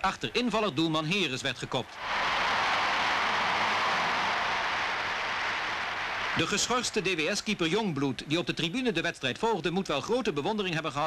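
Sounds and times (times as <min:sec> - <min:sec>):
stadium crowd cheering: 0:02.0 - 0:07.8.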